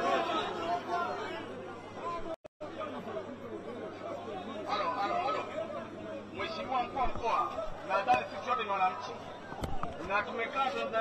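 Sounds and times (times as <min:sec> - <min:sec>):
crowd talking: 0:00.0 - 0:11.0.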